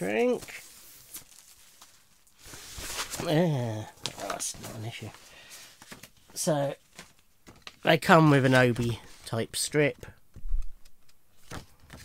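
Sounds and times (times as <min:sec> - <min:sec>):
rustling of cardboard and plastic wrap: 0:00.0 - 0:09.4.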